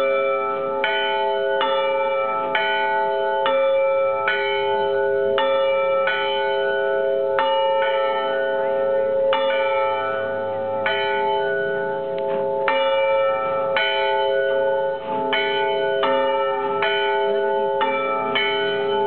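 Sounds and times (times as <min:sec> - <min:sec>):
church bells ringing: 0:00.0 - 0:19.0.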